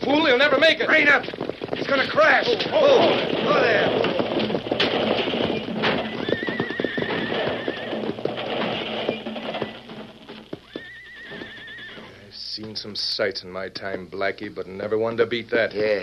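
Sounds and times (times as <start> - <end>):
stagecoach crash clatter: 0.0 - 10.6
horse whinnying: 2.0 - 12.4.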